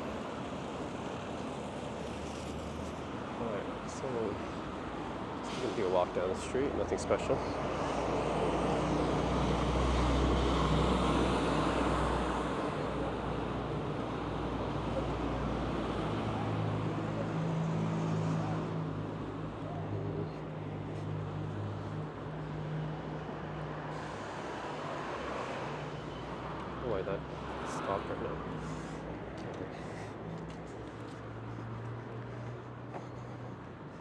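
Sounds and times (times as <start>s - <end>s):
street traffic noise: 0.0s - 34.0s.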